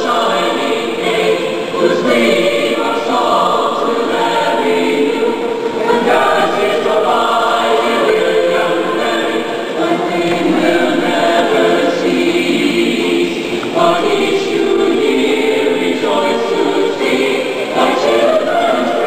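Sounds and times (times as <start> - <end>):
choir singing: 0.0 - 19.0.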